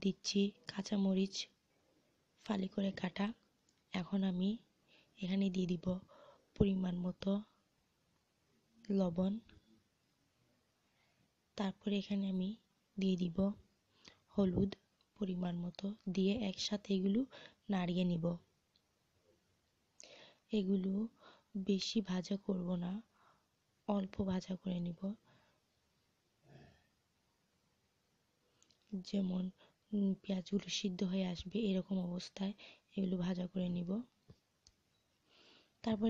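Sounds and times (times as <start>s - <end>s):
woman speaking: 0.0s - 1.6s, 2.4s - 7.6s, 8.8s - 9.6s, 11.6s - 13.6s, 14.3s - 18.5s, 20.5s - 23.1s, 23.9s - 25.2s, 28.9s - 34.2s
soft hiss: 0.0s - 36.0s.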